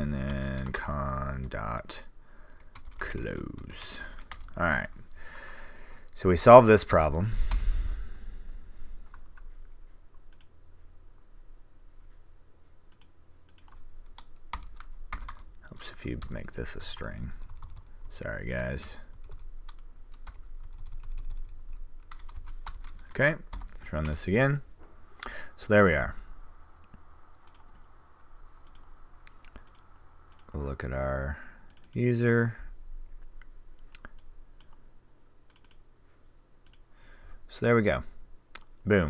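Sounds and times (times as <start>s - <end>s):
faint low hum: 0.0s - 39.0s
keyboard and mouse clicks: 9.1s - 10.5s, 12.9s - 15.6s, 26.8s - 27.9s, 28.6s - 30.6s, 31.7s - 32.0s, 33.3s - 34.8s, 35.5s - 35.8s, 36.6s - 36.8s.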